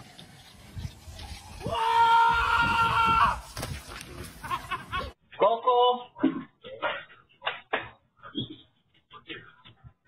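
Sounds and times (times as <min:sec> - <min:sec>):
person screaming high-pitched: 0:01.7 - 0:03.4.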